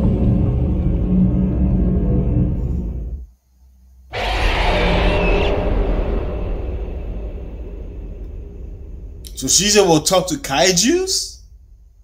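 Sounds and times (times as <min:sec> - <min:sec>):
loud rumbling sound effect: 0:04.1 - 0:10.0.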